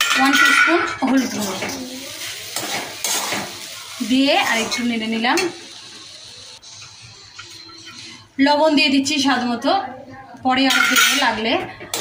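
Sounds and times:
spatula scraping a wok: 0.0 - 5.6
light sizzle: 0.0 - 8.2.

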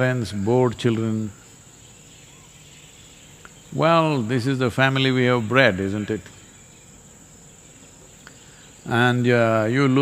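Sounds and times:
man speaking: 0.0 - 1.4, 3.7 - 6.3, 8.8 - 10.0
crickets trilling: 0.0 - 10.0
outdoor background noise: 0.0 - 10.0.

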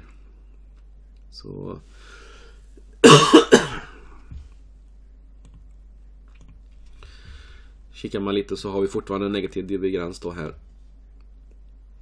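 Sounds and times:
man coughing: 3.0 - 4.0.

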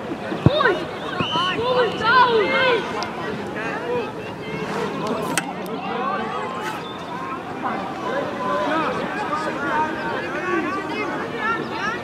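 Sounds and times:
overlapping shouts and chatter: 0.0 - 12.0.

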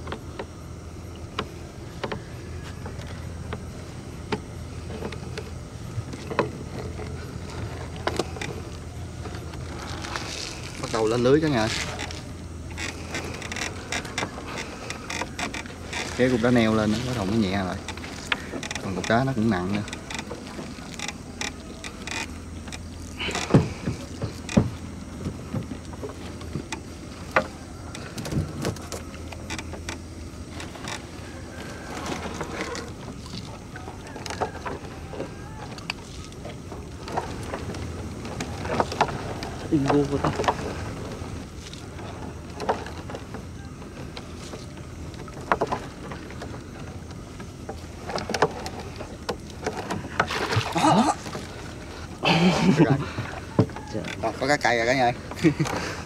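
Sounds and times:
low hum: 0.0 - 56.0.

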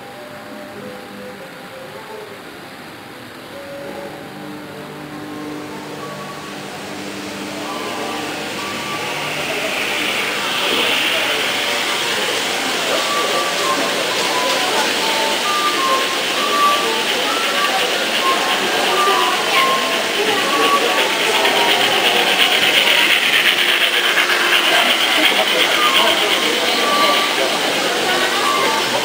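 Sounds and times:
model train coaches rattling past: 0.0 - 29.0.

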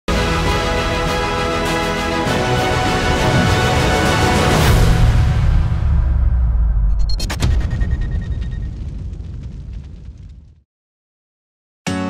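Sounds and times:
deep boom low rumble: 4.7 - 10.6.

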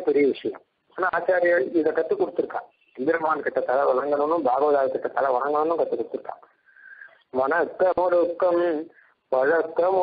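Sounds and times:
man talking: 0.0 - 6.6, 7.2 - 10.0.

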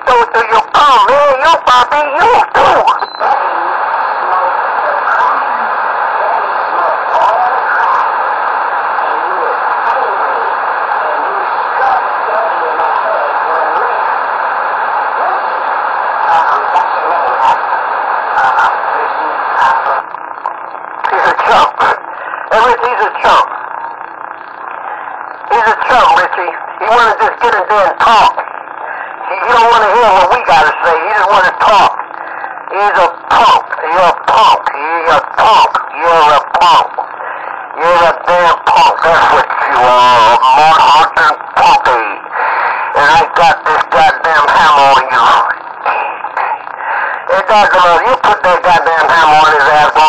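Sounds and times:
distorted radio voices: 0.0 - 50.0
radio static noise: 0.0 - 50.0.

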